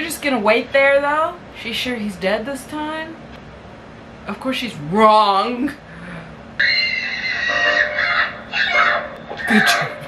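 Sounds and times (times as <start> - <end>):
shrill screaming: 6.6 - 10.0.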